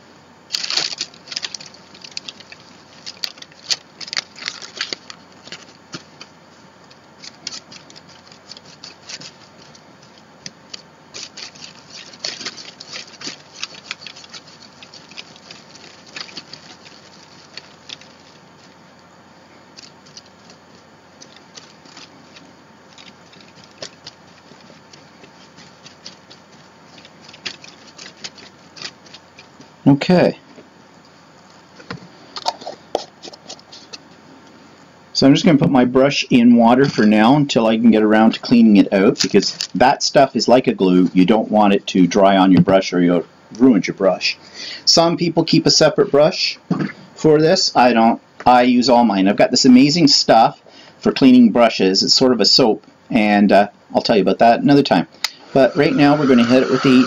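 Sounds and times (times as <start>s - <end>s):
paper crinkling: 0.5s - 30.0s, 31.0s - 34.2s, 38.2s - 39.8s
paintbrush scratching on paper: 11.2s - 18.8s, 23.0s - 29.6s, 55.5s - 57.0s.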